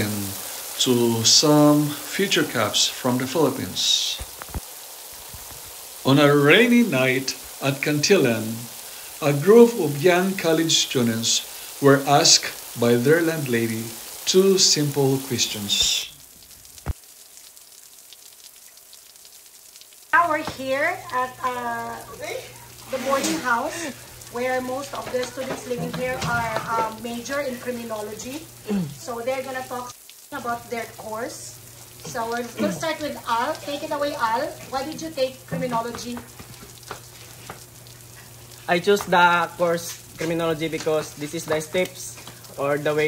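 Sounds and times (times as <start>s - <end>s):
steady rain falling: 0.0s - 43.0s
low steady hum: 20.1s - 43.0s.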